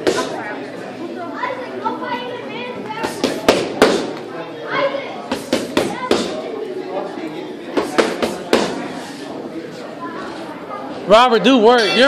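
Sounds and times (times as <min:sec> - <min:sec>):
indistinct crowd chatter: 0:00.0 - 0:12.0.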